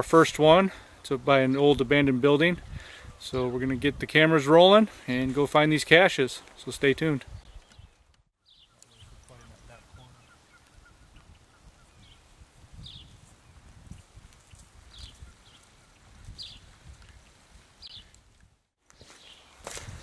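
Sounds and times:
high bird chirps: 7.4s - 12.2s.

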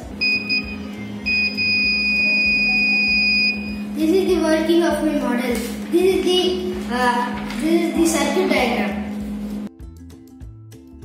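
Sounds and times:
soft background music: 0.0s - 11.0s
electronic alarm buzzer beeping: 0.2s - 3.9s.

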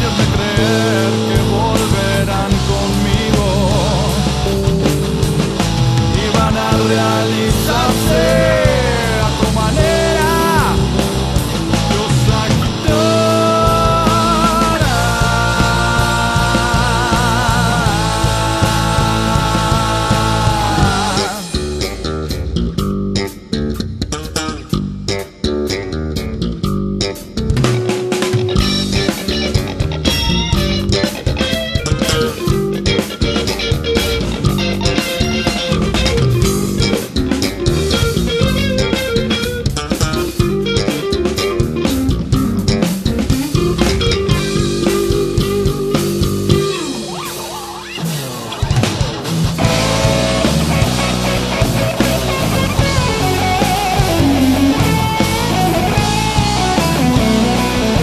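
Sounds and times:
falling guitar slide: 0.0s - 24.7s, 27.6s - 58.0s
bass guitar: 0.0s - 58.0s
drum kit: 0.0s - 58.0s
electric guitar: 0.0s - 58.0s.

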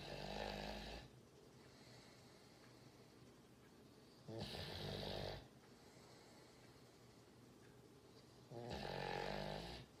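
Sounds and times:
dog snoring: 0.0s - 1.1s, 4.2s - 5.5s, 8.5s - 10.0s.

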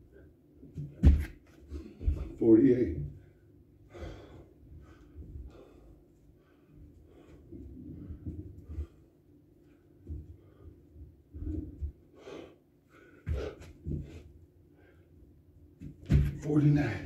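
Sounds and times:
thuds on rubber mat: 0.8s - 1.4s, 15.8s - 16.4s
man breathing hard: 3.8s - 9.3s, 9.9s - 15.2s.

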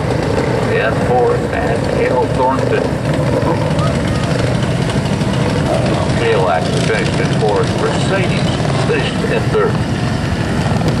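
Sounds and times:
small engines idling: 0.0s - 11.0s.

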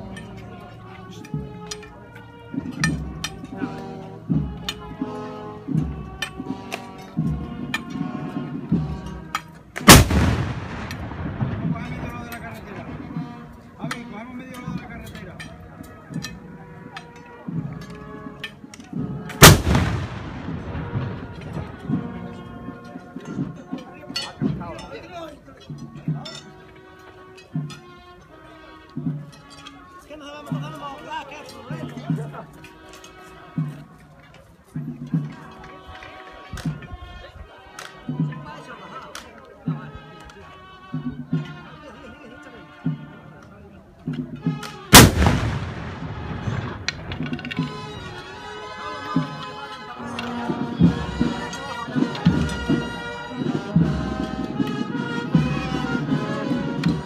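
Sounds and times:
musket shot with echo: 9.8s - 12.2s, 19.4s - 21.9s, 44.9s - 47.4s.

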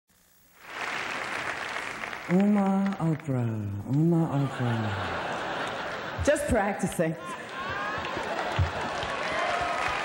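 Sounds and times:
audience applauding: 0.6s - 6.1s, 7.2s - 10.0s.

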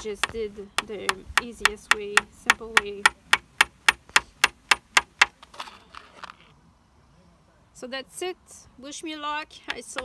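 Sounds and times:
hammer tapping a nail into wood: 0.0s - 5.3s.

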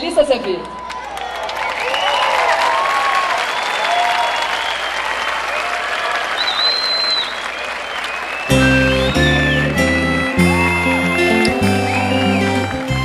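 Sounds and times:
audience applauding: 0.6s - 13.0s.

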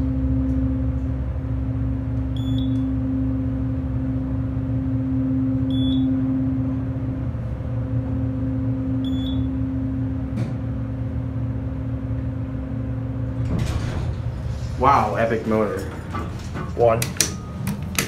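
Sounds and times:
elevator pump motor humming: 0.0s - 18.0s
short electronic beeps: 5.7s - 6.1s, 9.0s - 9.5s.

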